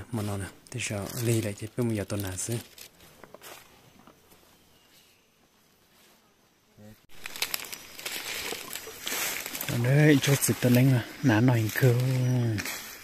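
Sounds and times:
rustling of dry leaves: 0:00.0 - 0:06.4, 0:07.0 - 0:13.0.

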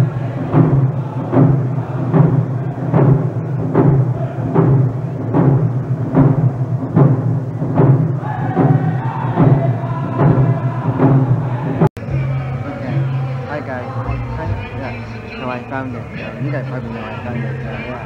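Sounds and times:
people singing: 0:00.0 - 0:05.6, 0:08.1 - 0:18.0
hand drums steady beat: 0:00.0 - 0:11.9.

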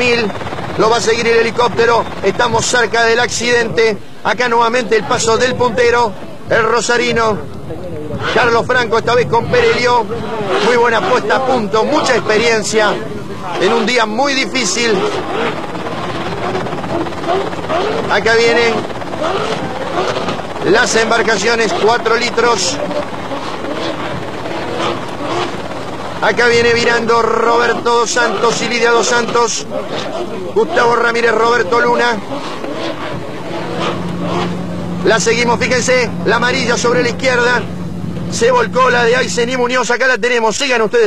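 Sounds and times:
helicopter rotor and engine: 0:00.0 - 0:41.0.

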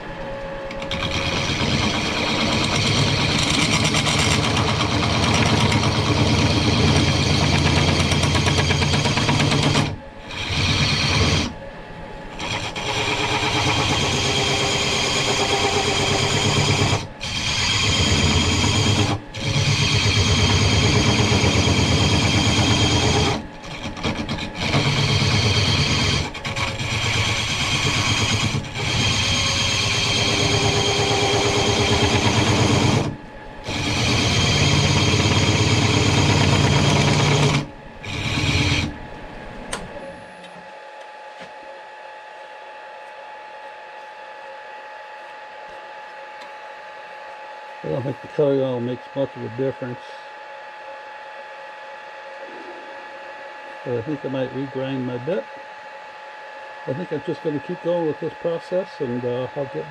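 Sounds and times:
lathe tool scraping metal: 0:00.7 - 0:11.6, 0:12.3 - 0:39.2.

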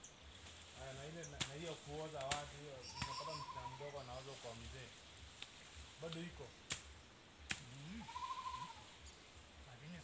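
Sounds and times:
farm animal bleating: 0:02.8 - 0:04.0, 0:07.9 - 0:09.0.

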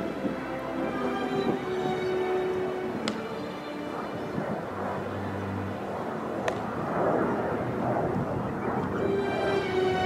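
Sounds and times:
outdoor background hum: 0:00.0 - 0:10.0
baseball smacking into glove: 0:03.0 - 0:03.2, 0:06.4 - 0:06.7.

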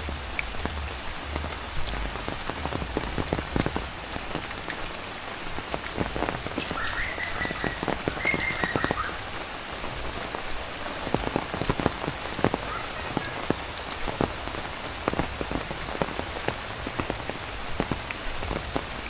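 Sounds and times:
heavy rain hissing: 0:00.0 - 0:19.0.

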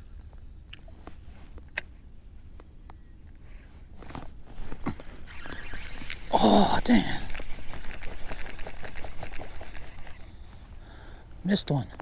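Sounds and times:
fishing line whirring off spool: 0:04.6 - 0:10.7
fishing reel ticking: 0:05.0 - 0:10.4.

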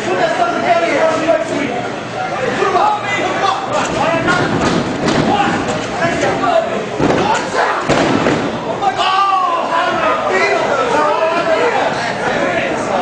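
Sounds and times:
crowd shouting and chatter: 0:00.0 - 0:13.0.

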